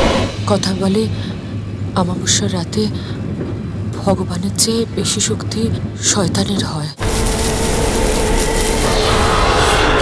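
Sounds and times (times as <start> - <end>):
rumbling drone with low tone: 7.0 - 10.0.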